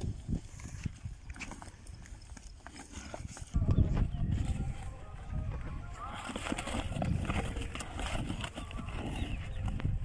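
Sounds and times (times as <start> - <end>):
hooves scuffing on dry dirt: 0.0 - 10.0.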